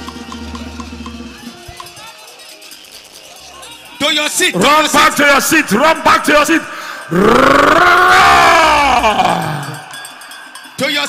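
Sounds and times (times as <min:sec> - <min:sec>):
person shouting: 0:05.6 - 0:09.9.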